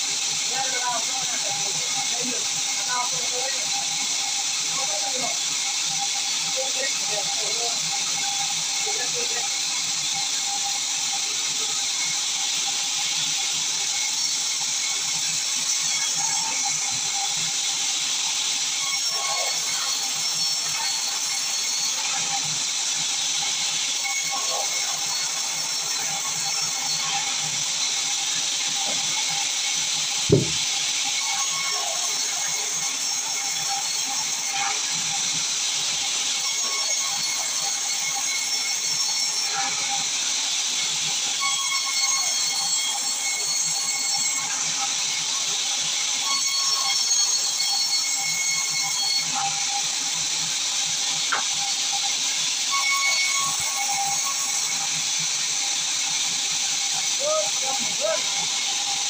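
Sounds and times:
band saw cutting wood: 0.0s - 59.0s
sharp low thud: 30.3s - 30.6s.

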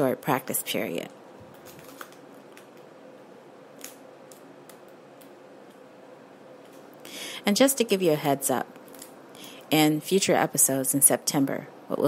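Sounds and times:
background hiss: 0.0s - 12.0s
faint hum: 0.0s - 12.0s.

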